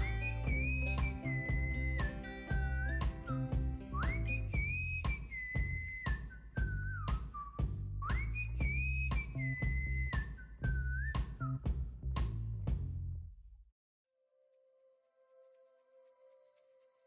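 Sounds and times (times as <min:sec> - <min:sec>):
steady beat and bass: 0:00.0 - 0:05.9, 0:11.2 - 0:13.3
whistle-like lead melody: 0:00.0 - 0:11.8.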